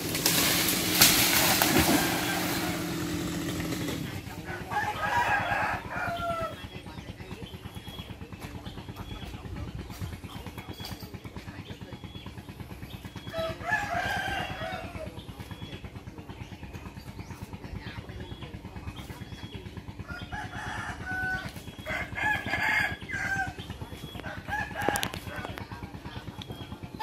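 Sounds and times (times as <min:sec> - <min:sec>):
small engine idling: 0:00.0 - 0:27.0
rooster crowing: 0:01.7 - 0:02.9, 0:04.5 - 0:06.6, 0:13.3 - 0:15.0, 0:20.1 - 0:23.6.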